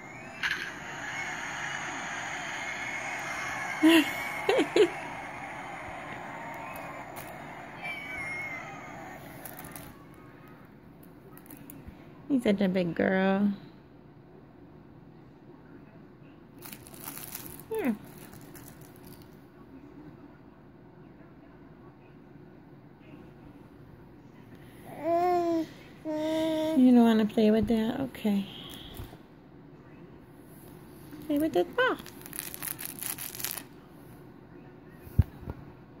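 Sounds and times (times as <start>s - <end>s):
baby vocalisation: 0.0s - 10.0s, 24.9s - 26.8s
crinkly fabric toy rustling: 9.2s - 10.0s, 16.6s - 19.3s, 31.2s - 33.7s.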